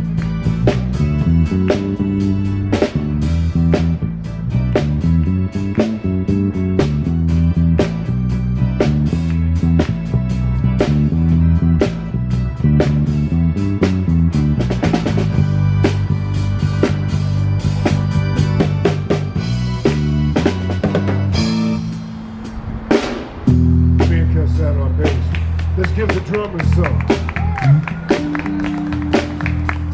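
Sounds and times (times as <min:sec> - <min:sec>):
drum kit: 0:00.0 - 0:29.9
live band playing a groove: 0:00.0 - 0:29.9.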